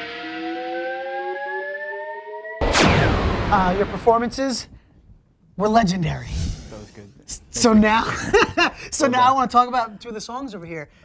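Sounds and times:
rising held chord: 0.0 - 2.6.

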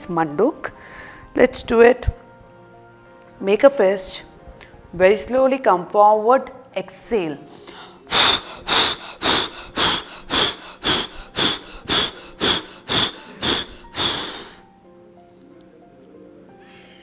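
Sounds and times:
soft background music: 0.0 - 17.0
woman exhaling forcefully: 8.1 - 14.6.

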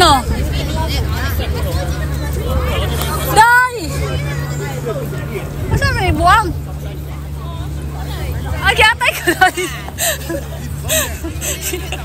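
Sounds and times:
low rumble: 0.0 - 12.0
people's voices: 0.0 - 12.0.

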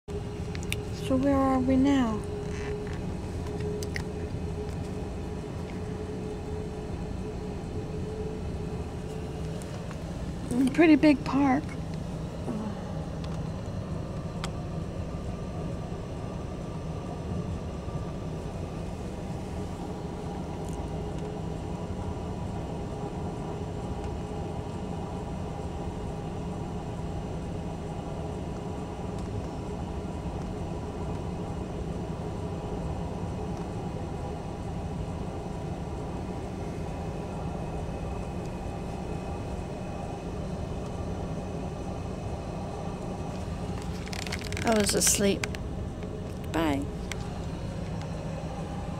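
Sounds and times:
car road and engine rumble: 0.1 - 48.9.

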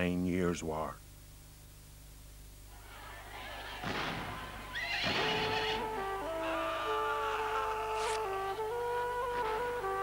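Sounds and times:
horse whinnying: 4.7 - 8.2
held music notes: 5.5 - 10.0.

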